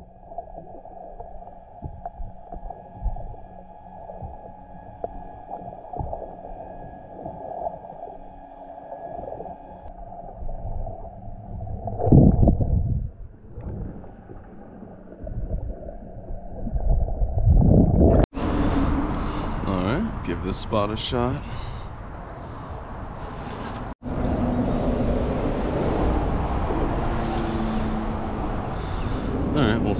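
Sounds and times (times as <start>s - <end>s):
underwater rumble and gurgling: 0.0s - 19.6s, 22.0s - 29.9s.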